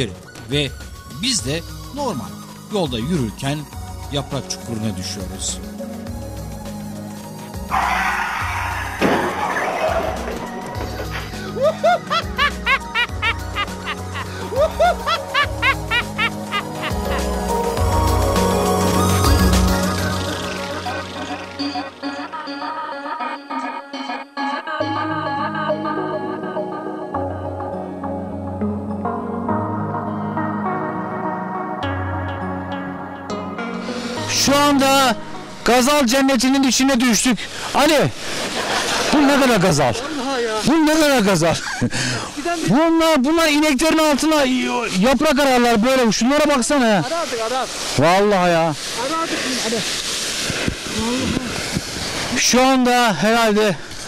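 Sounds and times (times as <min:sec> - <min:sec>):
background music: 0:00.0 - 0:49.0
man speaking: 0:39.1 - 0:41.7.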